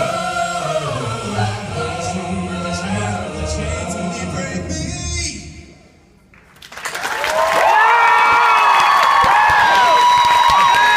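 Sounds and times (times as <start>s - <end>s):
a cappella singing: 0.0s - 5.5s
audience applause and cheering: 6.4s - 10.9s
high shouts and whoops: 7.2s - 10.9s.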